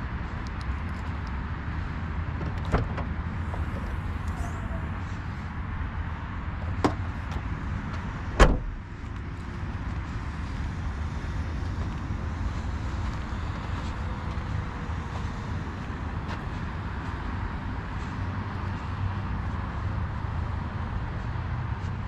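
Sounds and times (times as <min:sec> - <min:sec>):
steady low rumble: 0:00.0 - 0:22.0
car door shutting thud: 0:02.4 - 0:03.9, 0:08.3 - 0:08.8.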